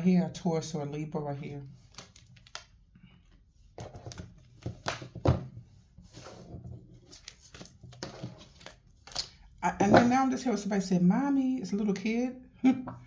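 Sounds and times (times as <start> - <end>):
cards rustling and flicking: 1.8 - 2.8, 3.8 - 5.4, 7.0 - 10.1.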